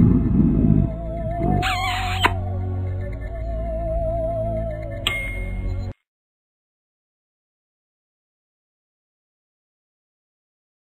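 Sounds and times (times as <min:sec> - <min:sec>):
spooky warbling cartoon music: 0:00.0 - 0:06.0.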